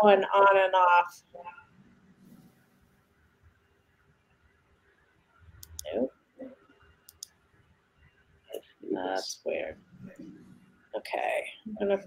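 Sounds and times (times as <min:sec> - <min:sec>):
computer mouse clicking: 0:05.6 - 0:06.0, 0:07.0 - 0:07.4.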